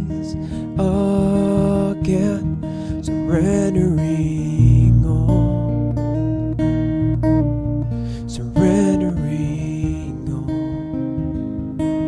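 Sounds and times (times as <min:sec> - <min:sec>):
strummed acoustic guitar song: 0:00.0 - 0:12.0.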